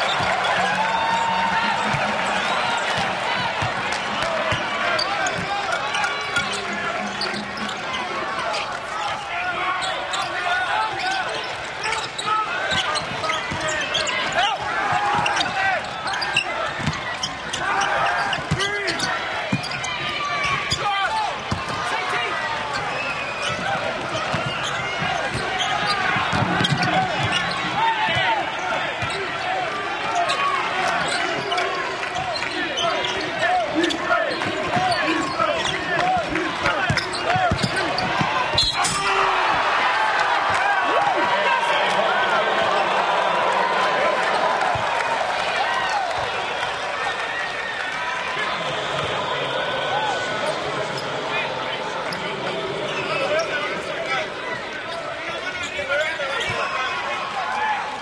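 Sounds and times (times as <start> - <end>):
crowd noise: 0.0 - 58.0
voices: 0.0 - 58.0.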